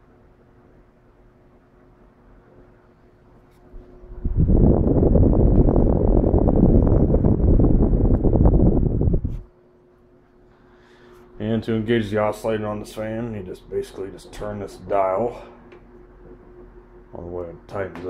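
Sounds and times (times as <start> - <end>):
desk fan humming: 0.0 - 18.0
wind buffeting on microphone: 3.8 - 9.5.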